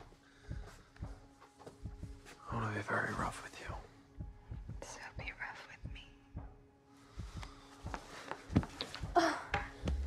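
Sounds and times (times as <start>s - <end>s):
quiet film score: 0.0s - 10.0s
man and woman whispering: 2.3s - 6.3s.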